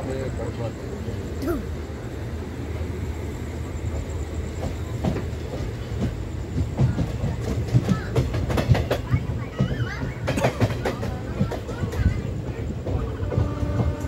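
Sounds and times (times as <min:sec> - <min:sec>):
train wheels rumbling on rail: 0:00.0 - 0:14.0
wheels clicking over rail joints: 0:04.0 - 0:14.0.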